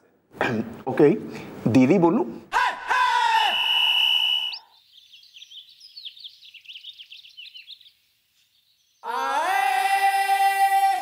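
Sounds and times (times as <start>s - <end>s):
birds chirping: 2.9s - 9.2s.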